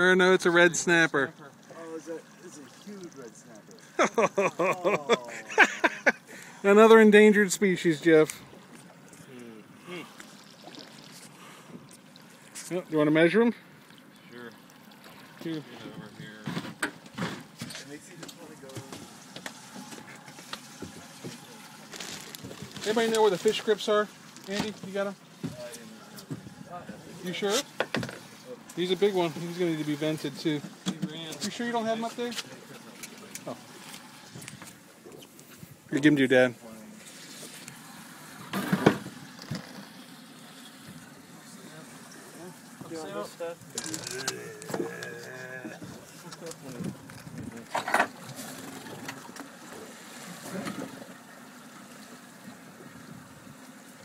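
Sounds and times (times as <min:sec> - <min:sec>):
water sloshing against hull: 0:08.0 - 0:54.0
indistinct voices: 0:43.7 - 0:46.6.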